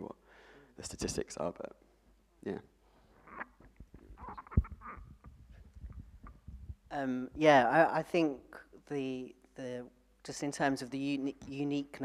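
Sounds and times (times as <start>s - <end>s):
microphone handling knocks and rustles: 3.6s - 6.9s
microphone thump: 3.9s - 6.9s.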